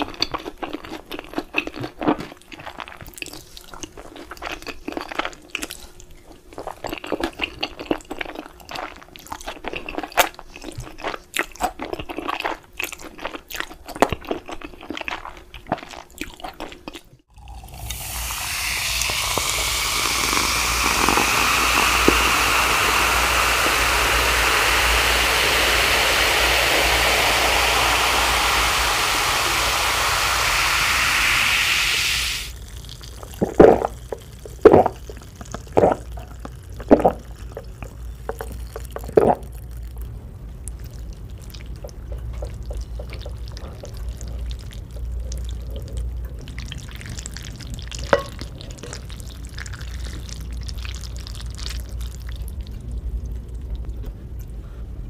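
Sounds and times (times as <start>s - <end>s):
chewing and slurping noodles: 0.0s - 25.8s, 32.5s - 54.6s
drink pouring into glass of ice: 17.4s - 39.6s.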